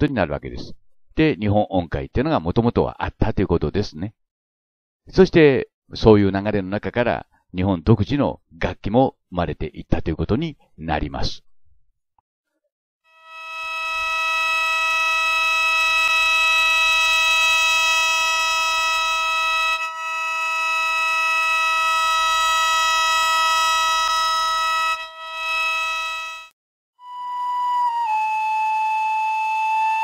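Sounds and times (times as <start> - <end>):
mouth organ sustained chord: 13.2 - 26.5.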